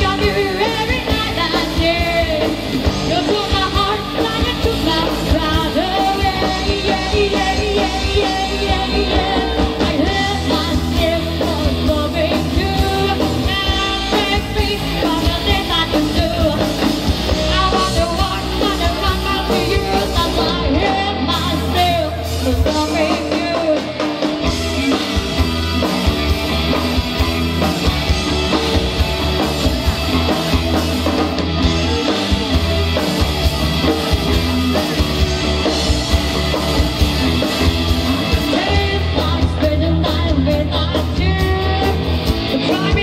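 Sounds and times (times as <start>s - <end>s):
woman singing: 0.0s - 24.3s, 38.4s - 43.0s
drum kit beat: 0.0s - 43.0s
electric guitar: 0.0s - 43.0s.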